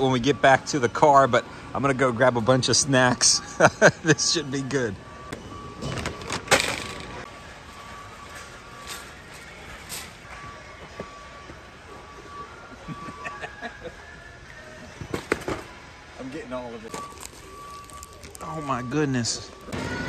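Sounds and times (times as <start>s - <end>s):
store background noise: 0.0s - 20.0s
plastic bag rustling: 16.9s - 18.8s.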